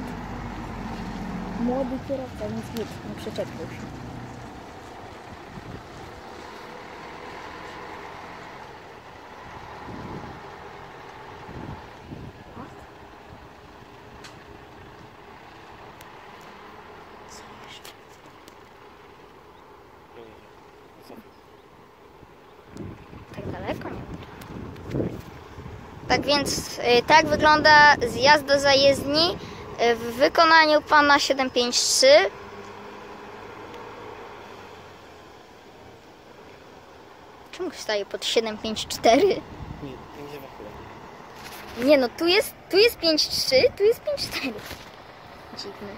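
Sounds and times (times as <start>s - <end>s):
car engine approaching: 0.0s - 45.9s
distant bus diesel engine: 0.0s - 45.9s.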